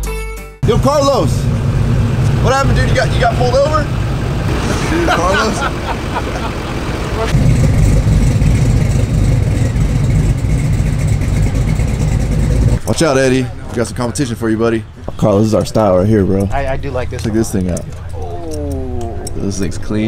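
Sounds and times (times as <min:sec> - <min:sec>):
road noise: 0:00.6 - 0:20.0
truck engine droning: 0:00.6 - 0:20.0
indistinct voices: 0:02.2 - 0:07.4, 0:12.8 - 0:20.0.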